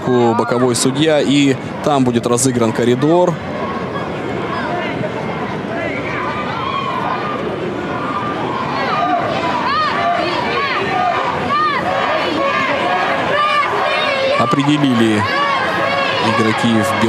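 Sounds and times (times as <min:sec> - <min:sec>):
crowd shouting: 0:00.0 - 0:17.0
stadium hubbub: 0:00.0 - 0:17.0.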